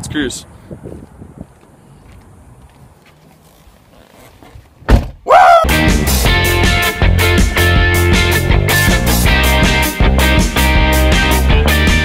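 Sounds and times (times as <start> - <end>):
truck door slamming shut: 4.8 - 5.3
rock music with guitar: 5.7 - 12.0.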